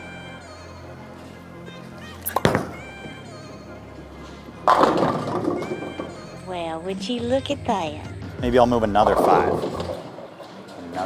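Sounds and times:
background music: 0:00.0 - 0:11.0
bowling ball thudding on lane: 0:02.3 - 0:02.9, 0:04.6 - 0:06.2.

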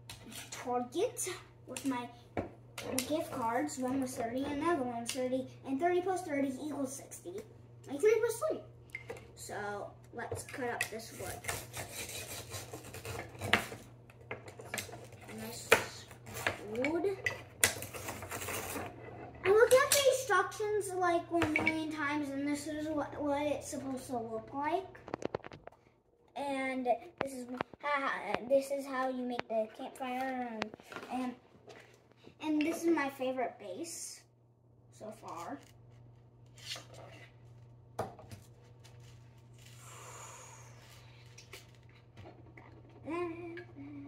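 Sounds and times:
low steady hum: 0:00.0 - 0:44.0
toy knife scraping wood: 0:11.1 - 0:13.8, 0:17.8 - 0:19.2.

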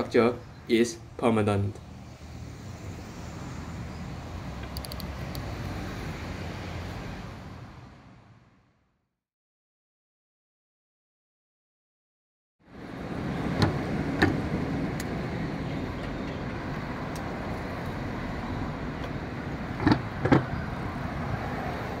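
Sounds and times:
road traffic noise: 0:00.0 - 0:09.0, 0:12.6 - 0:22.0.

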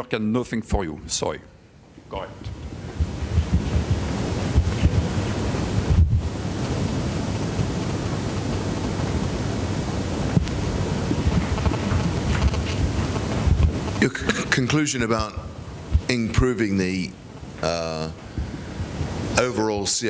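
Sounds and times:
microphone handling rustle: 0:02.4 - 0:14.5, 0:15.8 - 0:16.1.

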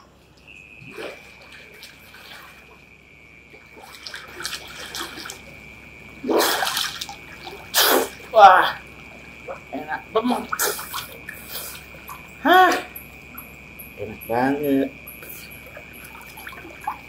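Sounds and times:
water splashing in pool: 0:00.0 - 0:13.5, 0:15.2 - 0:17.0.

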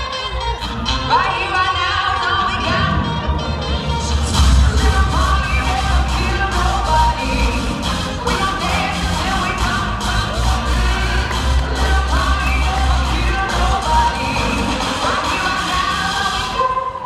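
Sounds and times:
upbeat pop music with singing: 0:00.0 - 0:17.0
crowd cheering: 0:08.2 - 0:16.4.

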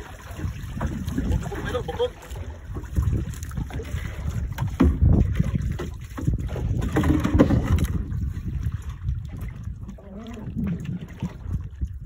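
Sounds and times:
water against boat hull: 0:00.0 - 0:12.0
wind buffeting microphone: 0:00.0 - 0:12.0.

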